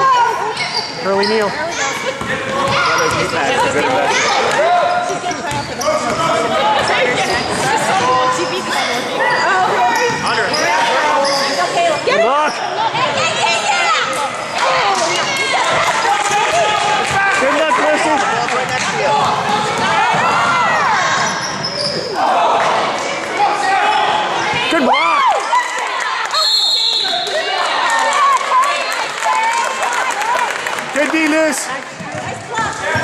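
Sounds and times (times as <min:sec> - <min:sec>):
players running on hardwood floor: 0:14.8 - 0:21.8.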